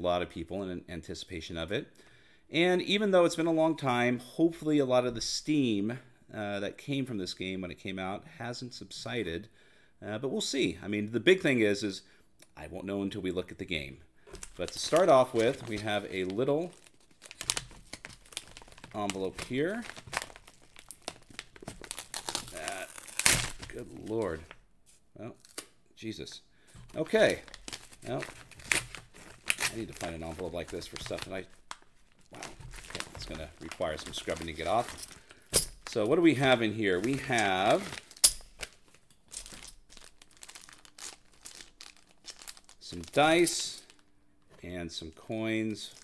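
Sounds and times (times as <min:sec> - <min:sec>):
padded envelope crinkling: 0:14.3 - 0:24.6, 0:26.8 - 0:44.1.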